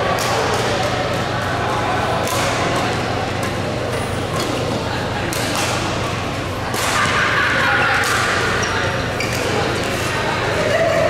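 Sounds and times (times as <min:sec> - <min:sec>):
voices in background: 0:00.0 - 0:11.0
racket hitting shuttlecock: 0:02.2 - 0:03.6, 0:05.2 - 0:05.9, 0:06.7 - 0:07.2, 0:07.9 - 0:08.6.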